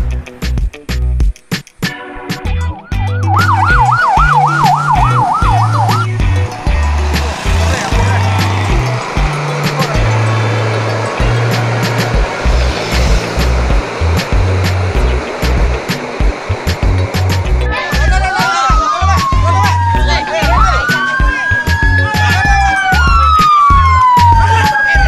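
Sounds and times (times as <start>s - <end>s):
music with repeating bass line: 0.0s - 25.0s
vehicle siren yelping: 2.8s - 25.0s.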